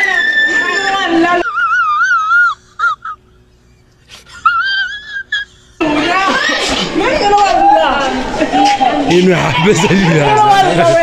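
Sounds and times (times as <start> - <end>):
high-pitched wailing voice: 0.0 - 3.1.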